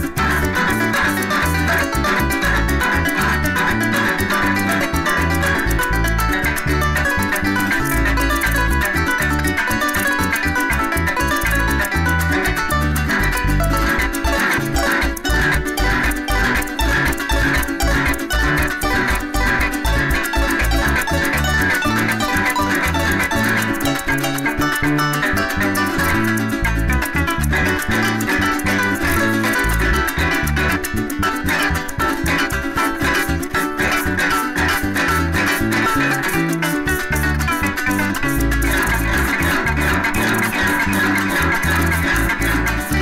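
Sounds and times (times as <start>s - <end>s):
electric bass: 0.0s - 43.0s
harp plucked runs: 0.0s - 43.0s
maracas shaking: 0.0s - 43.0s
strummed cuatro: 0.0s - 43.0s.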